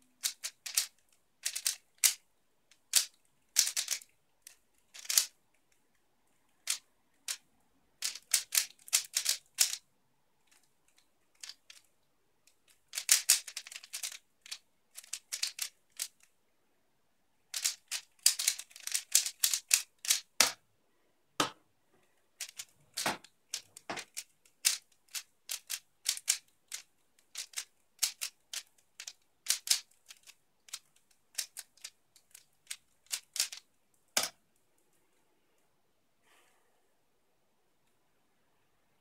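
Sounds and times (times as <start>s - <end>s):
plastic puzzle cube clacking: 0.1s - 5.7s, 6.5s - 9.8s, 10.4s - 16.3s, 17.5s - 20.6s, 22.3s - 34.4s.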